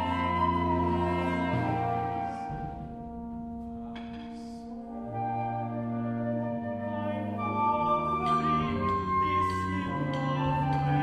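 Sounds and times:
ensemble holding long chords: 0.0 - 11.0.

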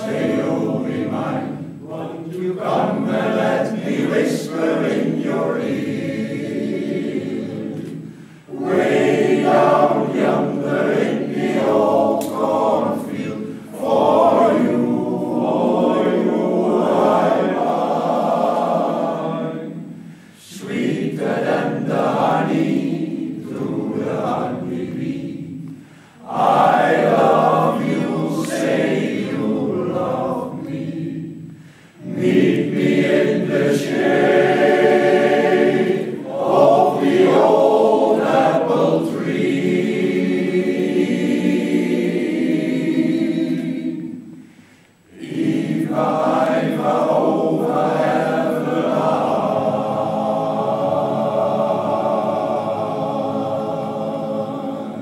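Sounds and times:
male choir singing: 0.0 - 44.4, 45.1 - 55.0.

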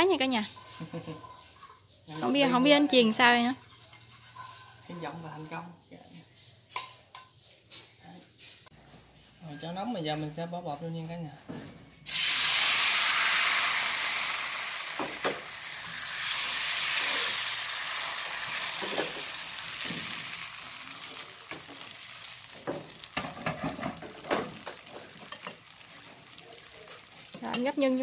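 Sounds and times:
batter sizzling in a frying pan: 0.1 - 5.7, 12.0 - 28.0
pan and utensils knocking: 22.6 - 25.7.

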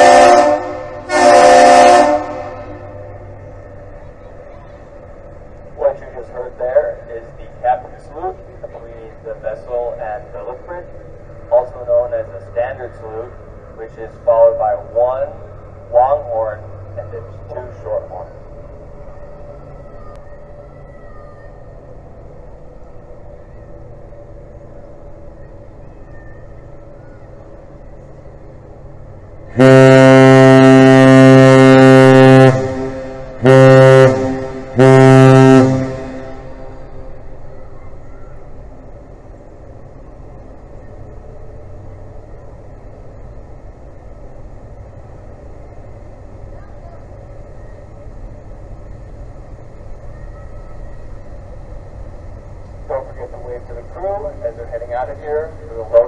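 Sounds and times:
deep ship horn blasts: 0.0 - 3.7, 29.4 - 37.5.

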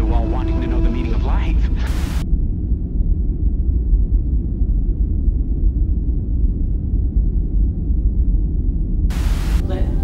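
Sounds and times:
steady low rumble: 0.0 - 10.0
static hiss: 1.8 - 2.2, 9.1 - 9.7.

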